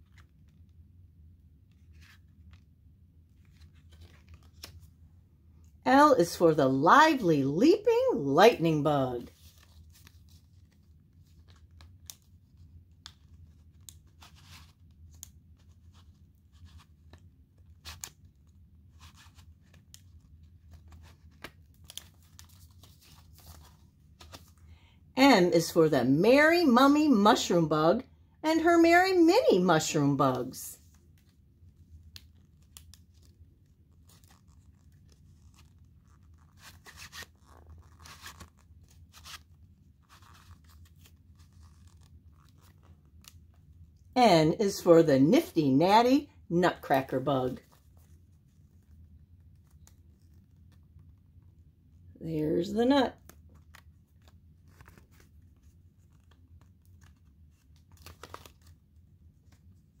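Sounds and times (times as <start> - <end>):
paper pages rustling: 0.0 - 0.8, 1.6 - 5.0, 9.2 - 24.8, 30.8 - 44.0, 47.5 - 51.7, 53.2 - 60.0
low steady hum: 0.0 - 60.0.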